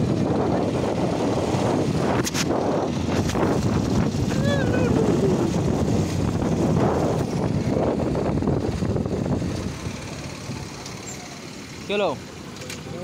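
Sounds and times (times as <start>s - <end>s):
wind buffeting microphone: 0.0s - 11.0s
vehicle rumble on road: 0.0s - 13.0s.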